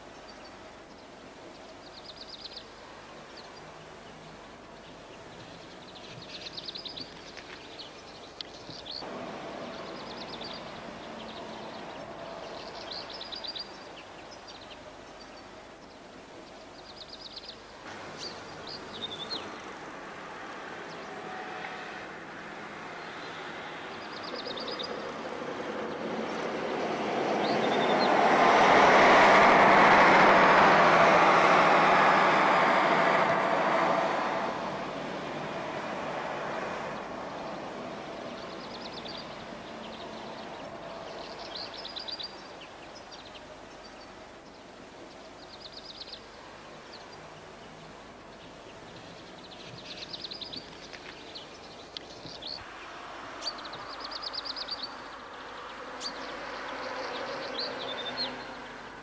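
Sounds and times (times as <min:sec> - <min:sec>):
birds chirping: 0:00.0 - 0:28.4, 0:34.5 - 0:59.0
vehicle passing by: 0:09.0 - 0:13.4, 0:17.9 - 0:42.9, 0:52.4 - 0:59.0.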